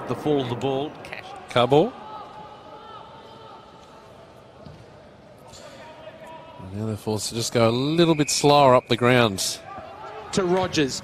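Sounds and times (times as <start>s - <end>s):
stadium ground noise: 0.0s - 11.0s.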